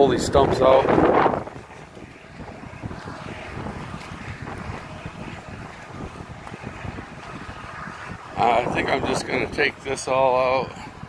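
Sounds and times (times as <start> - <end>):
wind buffeting a microphone: 0.0 - 11.0.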